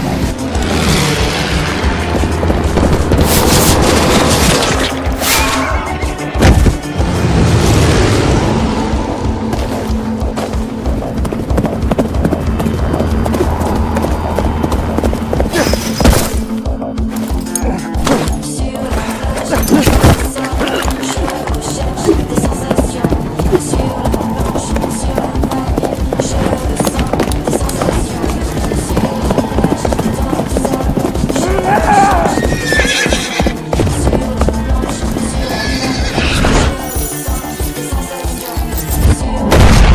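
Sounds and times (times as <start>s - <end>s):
background music: 0.0s - 39.9s
horse hooves clip-clopping: 9.4s - 17.6s, 18.2s - 39.2s
horse whinnying: 31.4s - 33.7s, 35.3s - 36.8s.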